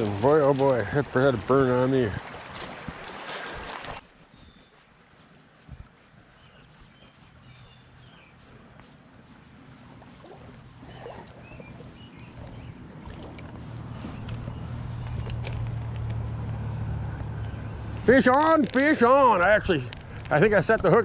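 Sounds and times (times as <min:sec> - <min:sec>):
vehicle engine hum: 0:07.4 - 0:20.4.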